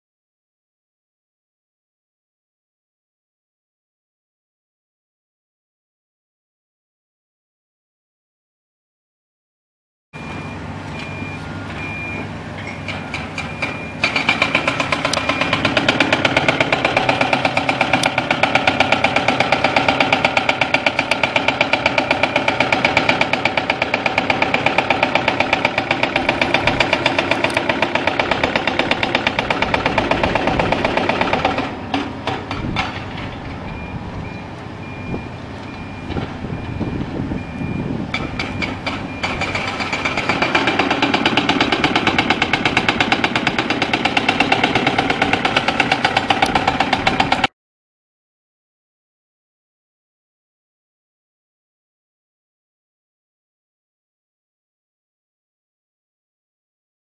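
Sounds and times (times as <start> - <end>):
reversing alarm beeping: 10.2 - 16.0, 33.6 - 40.2
construction machinery diesel engine: 10.2 - 47.5.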